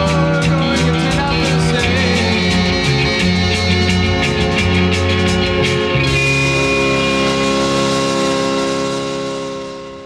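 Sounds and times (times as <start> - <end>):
fuzzy organ chord: 0.0 - 10.0.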